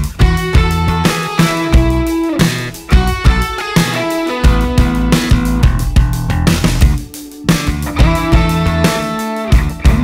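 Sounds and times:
instrumental rock band: 0:00.0 - 0:10.0.

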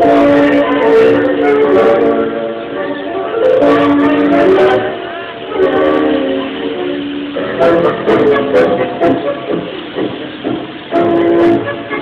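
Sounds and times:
tango music: 0:00.0 - 0:12.0.

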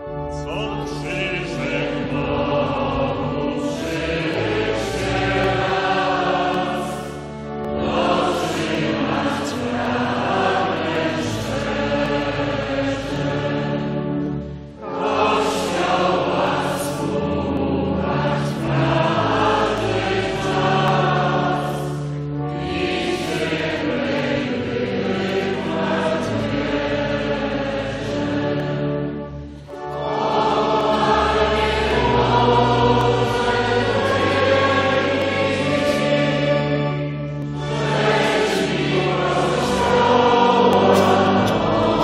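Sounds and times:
choir singing a slow hymn: 0:00.0 - 0:42.0.

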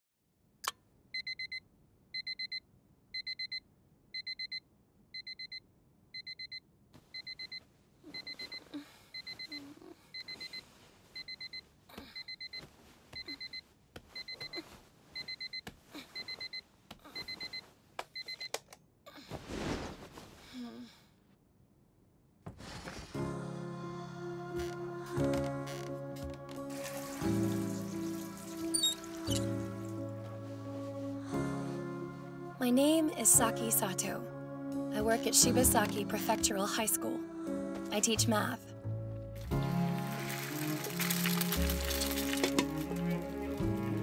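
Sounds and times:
alarm clock beeping: 0:01.2 - 0:01.6, 0:02.2 - 0:02.6, 0:03.2 - 0:03.6, 0:04.2 - 0:04.6, 0:05.2 - 0:05.6, 0:06.2 - 0:06.6, 0:07.2 - 0:07.6, 0:09.2 - 0:09.6, 0:10.2 - 0:10.6, 0:11.2 - 0:11.6
rustling of bedding: 0:19.3 - 0:20.5, 0:22.5 - 0:23.3.

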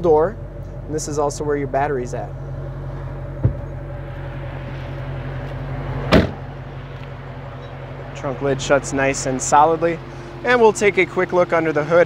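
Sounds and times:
steady low hum: 0:00.0 - 0:12.0
car trunk lid slamming: 0:02.9 - 0:03.8, 0:06.0 - 0:06.6.

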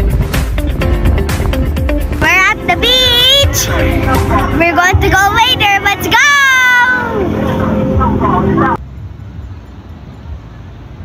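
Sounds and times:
wind: 0:00.0 - 0:11.0
children's voices: 0:02.2 - 0:08.8.

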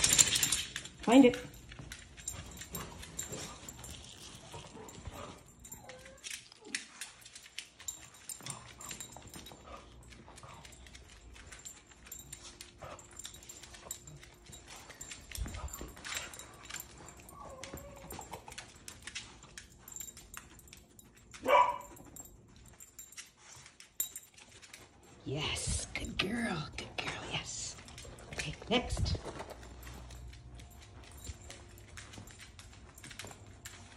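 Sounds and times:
dog claws clicking on floor: 0:00.0 - 0:33.9.

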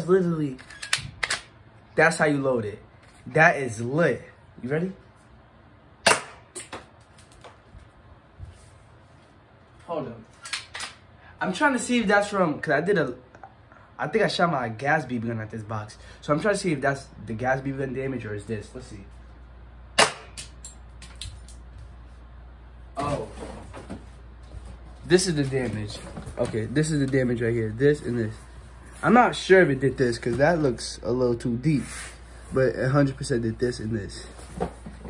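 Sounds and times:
bb gun shot: 0:06.0 - 0:06.5, 0:20.0 - 0:20.4.

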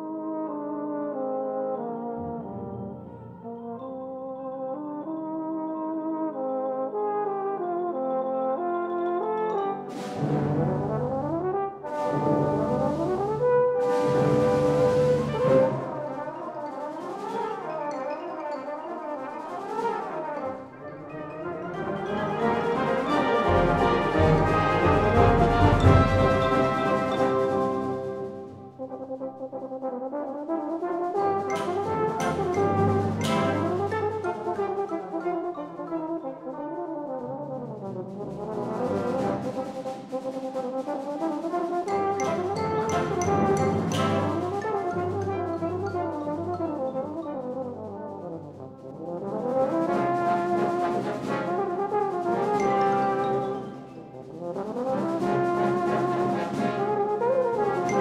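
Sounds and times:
military concert band playing: 0:00.0 - 0:58.0.

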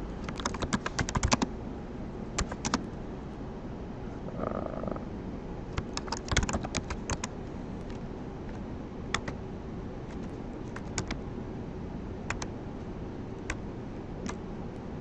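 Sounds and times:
computer keyboard typing: 0:00.2 - 0:01.5, 0:02.3 - 0:02.9, 0:05.7 - 0:07.4, 0:09.1 - 0:09.4, 0:10.0 - 0:11.2, 0:12.3 - 0:12.5, 0:13.4 - 0:14.4.

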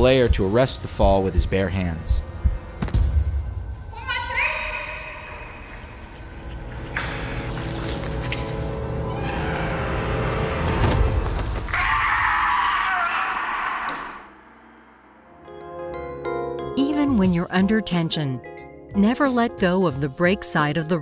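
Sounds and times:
music: 0:00.0 - 0:11.7, 0:14.3 - 0:21.0.

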